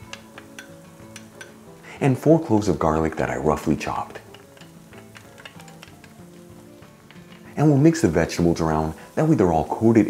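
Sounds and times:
quiet background music: 0.0 - 10.0
vegetables sizzling in oil: 0.0 - 10.0.

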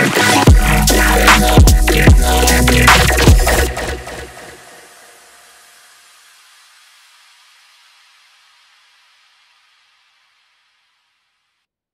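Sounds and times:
electronic dance track final hit: 0.0 - 5.2
hissy reverb wash: 0.1 - 11.2.

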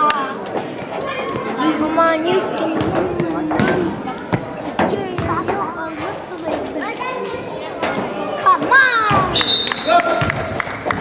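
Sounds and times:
basketball bouncing: 2.7 - 5.6, 10.2 - 11.0.

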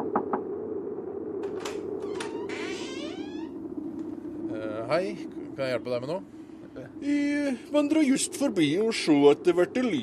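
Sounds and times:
door creaking open: 1.4 - 3.6.

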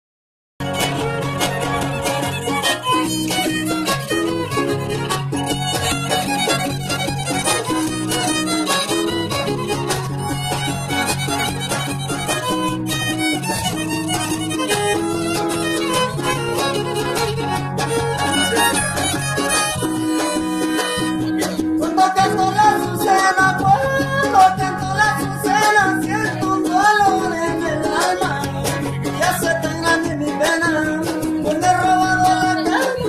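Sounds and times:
violin melody: 0.6 - 29.8
strummed guitars: 0.6 - 33.0.

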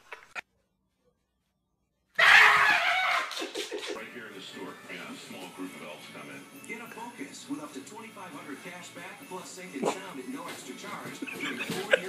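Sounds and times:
person screaming: 2.2 - 3.4
person laughing: 11.2 - 12.0.

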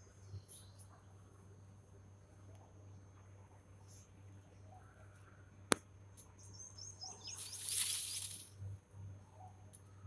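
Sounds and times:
small bird chirping: 6.2 - 8.6
peacock feathers rustling: 7.4 - 8.5.

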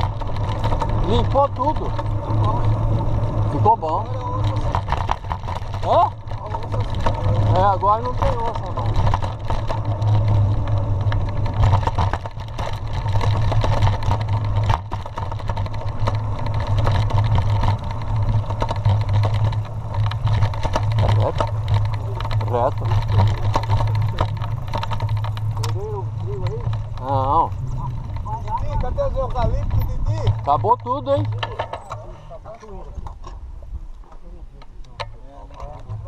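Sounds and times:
bike rattling and clicking: 0.0 - 36.0
tyres on dirt: 0.0 - 36.0.

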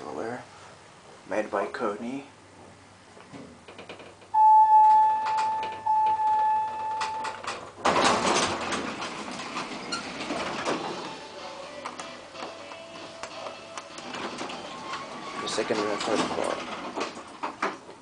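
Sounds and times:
lift doors sliding open: 3.8 - 18.0
lift electronic beep: 4.4 - 7.4.

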